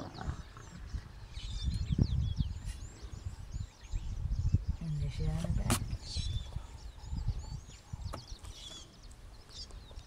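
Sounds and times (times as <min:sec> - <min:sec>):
lions growling: 0:00.0 - 0:01.0
small birds chirping: 0:00.0 - 0:10.0.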